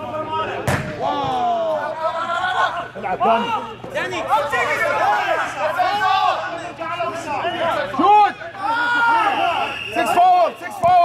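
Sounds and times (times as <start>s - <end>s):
ball being kicked: 0.6s - 1.4s.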